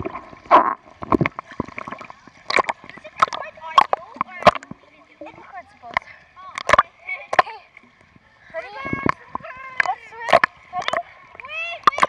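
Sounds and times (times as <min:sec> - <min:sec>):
pool water splashing: 0:00.0 - 0:12.0
sharp water slaps: 0:02.5 - 0:04.8, 0:06.0 - 0:07.5, 0:09.1 - 0:12.0.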